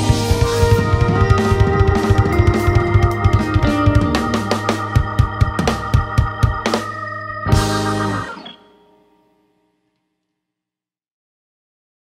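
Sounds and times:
band final chord: 0:00.0 - 0:09.2.

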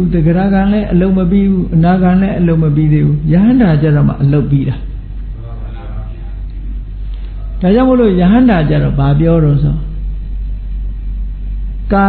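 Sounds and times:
man speaking: 0:00.0 - 0:06.4, 0:07.4 - 0:10.0
low hum with faint hiss: 0:00.0 - 0:12.0.

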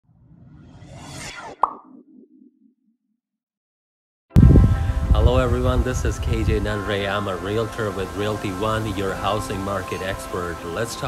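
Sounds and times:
whoosh: 0:00.0 - 0:02.4
low rumbling tail: 0:04.4 - 0:07.6.

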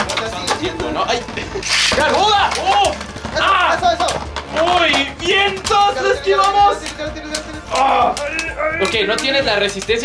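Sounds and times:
background music: 0:00.0 - 0:10.0
spinning tops clacking together: 0:01.6 - 0:03.1.

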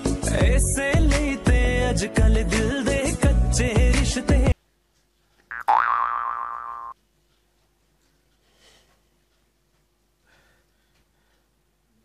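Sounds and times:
cartoon boing sound effect: 0:05.5 - 0:07.0.

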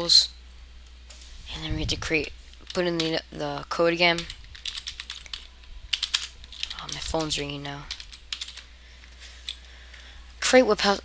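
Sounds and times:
keyboard keys clacking: 0:04.0 - 0:08.6.

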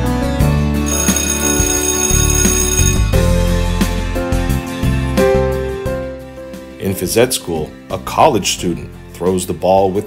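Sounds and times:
background music: 0:00.0 - 0:10.0
bell ringing: 0:00.9 - 0:03.3.

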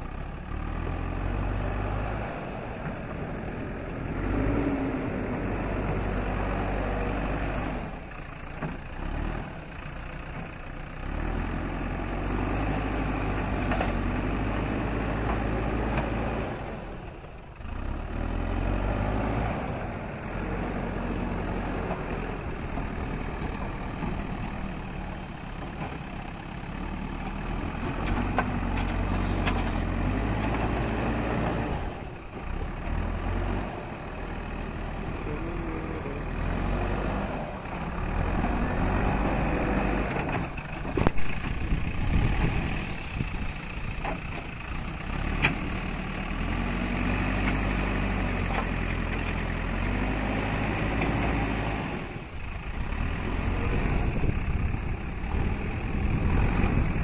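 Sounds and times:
diesel engine working: 0:00.0 - 0:57.0.

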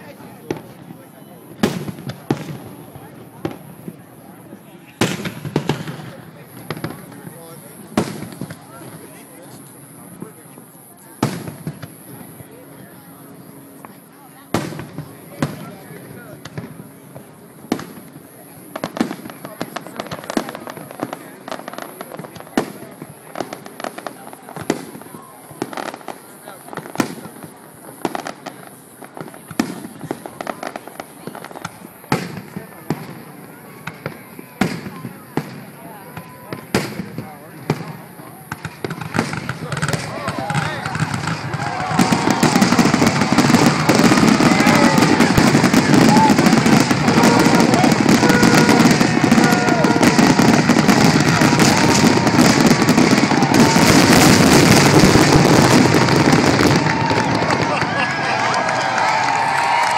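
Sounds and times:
fireworks bursting: 0:00.0 - 0:12.6, 0:13.8 - 0:59.9.

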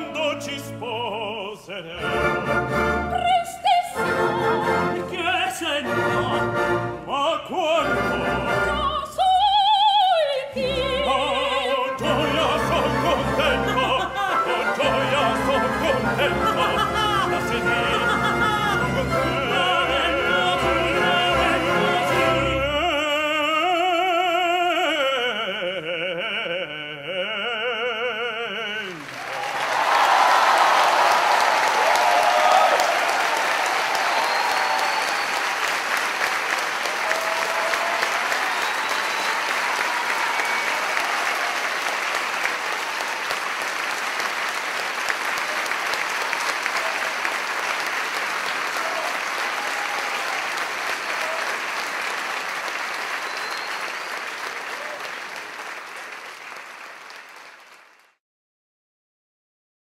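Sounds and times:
audience applauding: 0:28.8 - 0:58.2.

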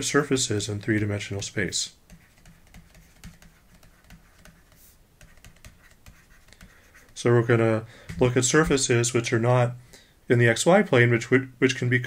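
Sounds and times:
stylus scratching on pen tablet: 0:02.0 - 0:07.6.

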